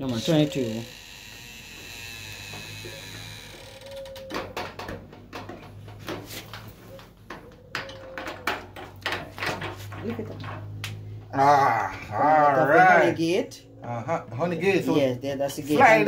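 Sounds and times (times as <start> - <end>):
honey gate clicks and knocks: 7.0 - 10.8.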